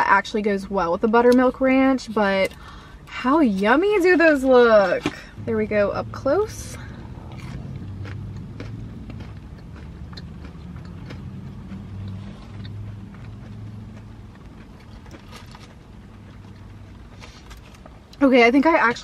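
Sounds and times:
car hum: 0:00.0 - 0:19.0
crunchy chewing: 0:06.8 - 0:18.0.

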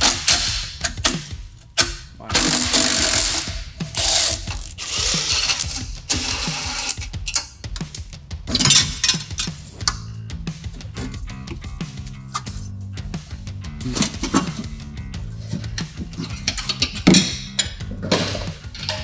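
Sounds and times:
hand tools ratcheting and clicking: 0:00.0 - 0:10.1, 0:15.4 - 0:19.0.

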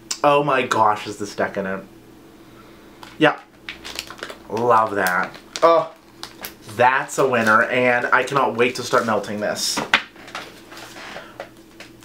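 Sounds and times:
low room hum: 0:00.0 - 0:12.0
plastic wrapper rustling: 0:03.0 - 0:09.0.

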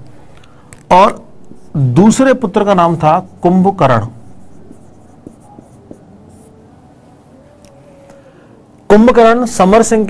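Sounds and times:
marker pen scratching on whiteboard: 0:02.8 - 0:06.7.

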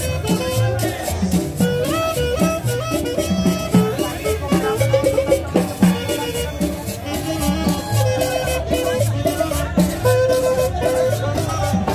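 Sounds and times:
quick melody line: 0:00.0 - 0:11.9
upright bass: 0:00.0 - 0:11.9.

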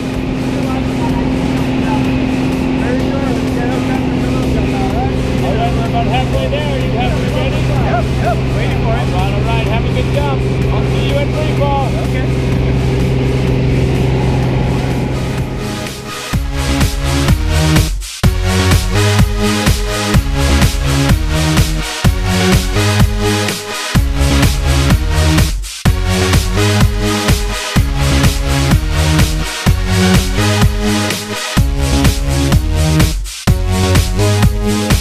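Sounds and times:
indistinct voices: 0:00.0 - 0:16.4
propeller plane engine droning: 0:00.0 - 0:32.8.

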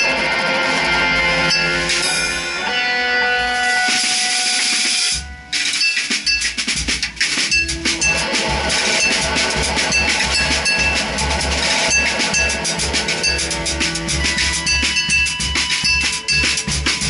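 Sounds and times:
fast drum kit strokes: 0:00.0 - 0:17.0.

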